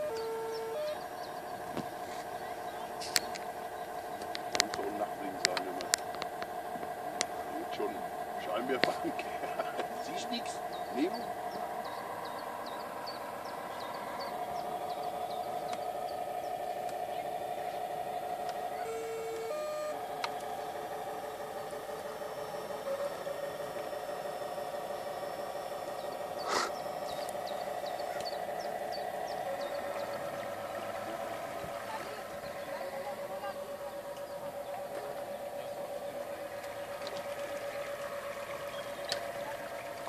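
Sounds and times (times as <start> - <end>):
model boat motor whine: 0.0 - 40.0.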